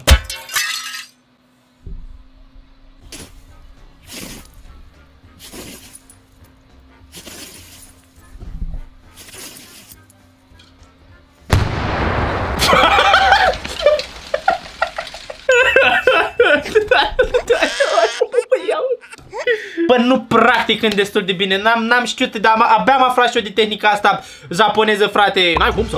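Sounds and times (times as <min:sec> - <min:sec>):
loud rumbling blast: 0:11.5 - 0:15.5
wooden deck board crashing: 0:12.5 - 0:15.5.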